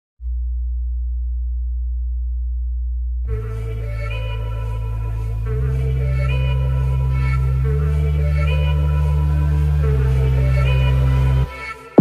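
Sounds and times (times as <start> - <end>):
deep electronic bass tone: 0.2 - 11.5
synth music: 3.3 - 12.0.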